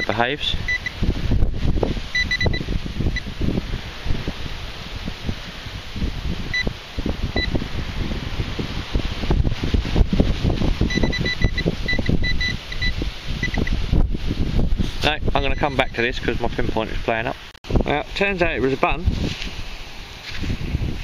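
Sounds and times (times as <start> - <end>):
wind buffeting microphone: 0.0 - 21.0
pinpointer short high beeps: 0.7 - 1.0, 2.2 - 2.6, 10.9 - 13.8.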